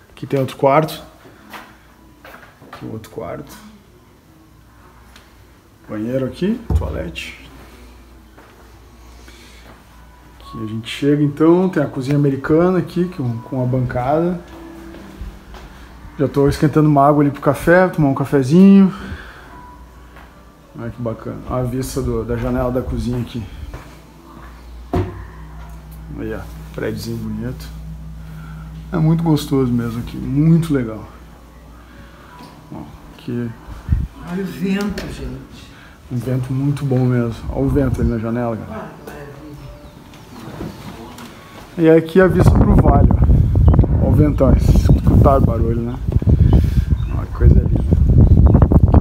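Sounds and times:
person speaking: 0:05.9 - 0:07.6, 0:25.2 - 0:31.3
low steady rumble: 0:21.9 - 0:32.3
wind buffeting microphone: 0:42.3 - 0:49.0.

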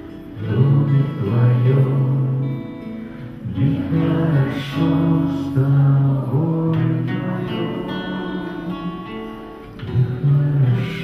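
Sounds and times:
guitar accompaniment: 0:00.0 - 0:11.0
man singing into a microphone: 0:00.2 - 0:11.0.

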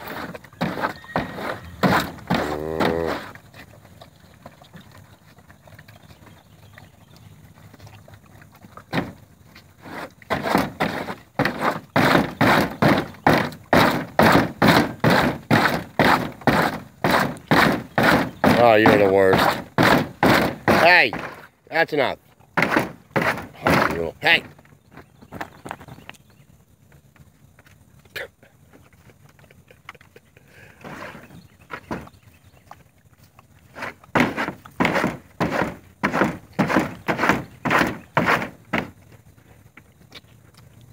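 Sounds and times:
horse banging plastic trough: 0:00.0 - 0:03.6, 0:08.8 - 0:25.8, 0:30.8 - 0:32.2, 0:33.7 - 0:39.0.

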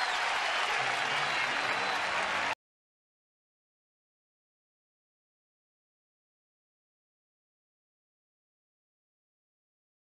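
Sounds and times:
crowd applauding and cheering: 0:00.0 - 0:02.6.

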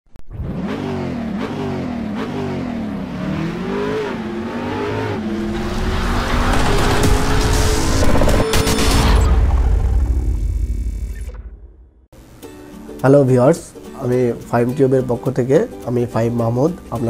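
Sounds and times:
car engine revving: 0:00.2 - 0:12.1
rushing noise: 0:03.2 - 0:11.9.

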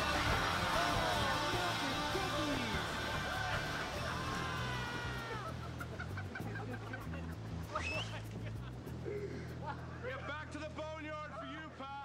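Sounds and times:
steady bass line: 0:00.0 - 0:09.8.

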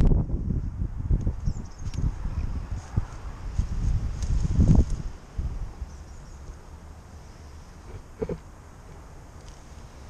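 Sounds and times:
wind on microphone: 0:00.0 - 0:06.6.

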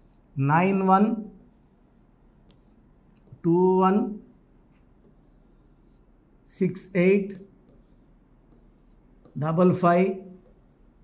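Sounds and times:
marker pen scratching whiteboard: 0:00.0 - 0:11.0.

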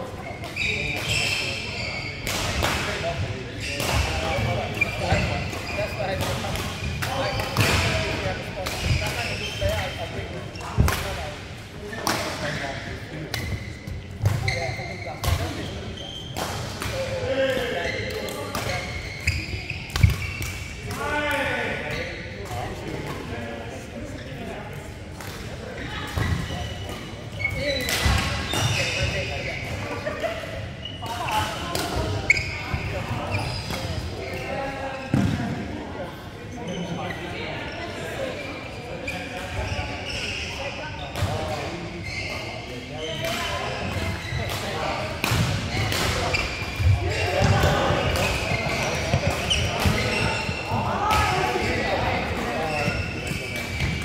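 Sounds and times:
players' voices: 0:00.0 - 0:54.0
rackets smacking shuttlecocks: 0:10.6 - 0:11.2, 0:19.9 - 0:21.1, 0:43.2 - 0:54.0.

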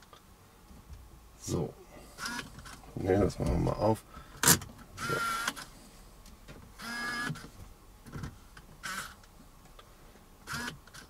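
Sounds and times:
small electric motor whirring: 0:02.2 - 0:02.5, 0:04.4 - 0:05.7, 0:06.8 - 0:07.4, 0:08.8 - 0:09.2, 0:10.5 - 0:11.0.

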